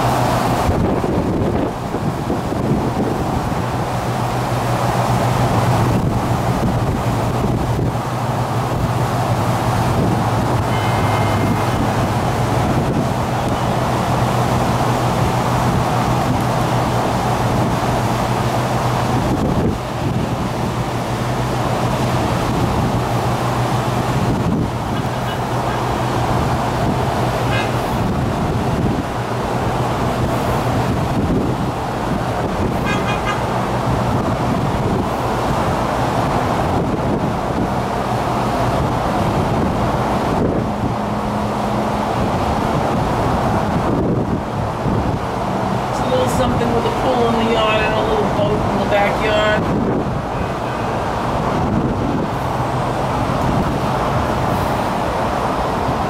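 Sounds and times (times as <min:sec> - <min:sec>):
road traffic across water: 0:00.0 - 0:56.0
low unchanging hum: 0:03.5 - 0:17.4.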